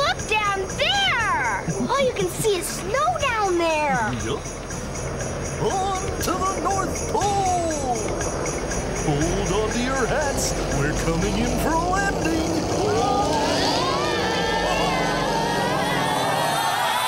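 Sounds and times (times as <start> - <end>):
music: 0.0 - 17.0
sleigh bells jingling: 0.0 - 17.0
children whooping: 12.8 - 17.0
group cheer: 13.0 - 17.0.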